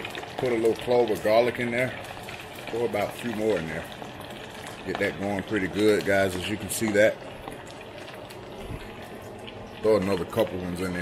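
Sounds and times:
oil bubbling and hissing: 0.0 - 11.0.

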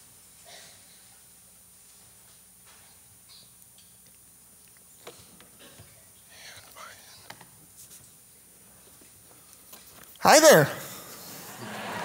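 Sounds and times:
faint whispering voice: 6.3 - 7.4.

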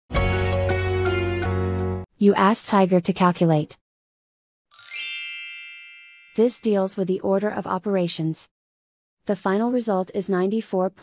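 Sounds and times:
bright bell-like chime: 4.7 - 6.7.

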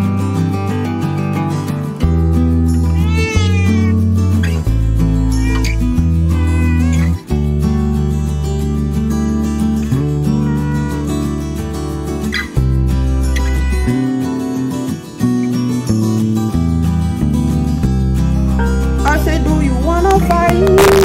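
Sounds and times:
music with loud bass: 0.0 - 21.0
cat meowing: 2.8 - 4.7, 5.3 - 7.5, 10.1 - 12.5, 13.1 - 14.7.

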